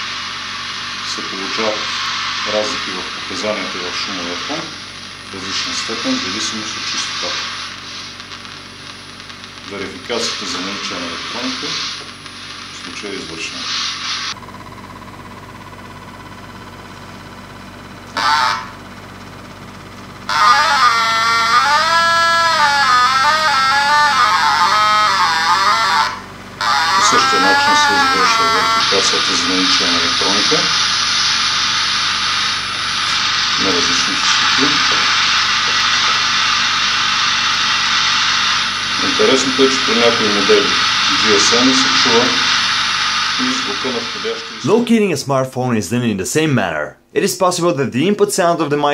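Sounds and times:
static hiss: 0.0 - 14.4, 18.0 - 19.6, 20.2 - 45.1
low electronic hum: 14.3 - 44.9
warbling tones: 19.7 - 44.9
muffled voice-like fragments: 22.8 - 30.8.

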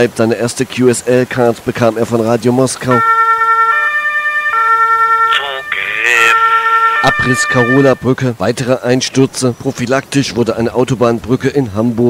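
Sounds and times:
two-tone siren: 2.9 - 8.1
brief voice: 5.3 - 6.4.

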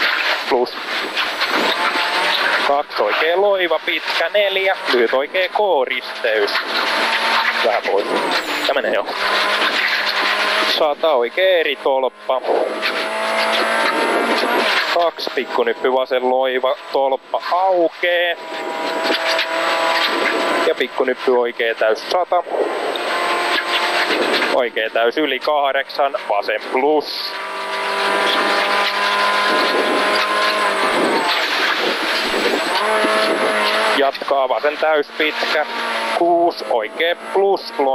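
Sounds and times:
gravel hissing under tyres: 0.0 - 4.7, 6.0 - 10.8
car engine at high revs: 0.0 - 37.9.

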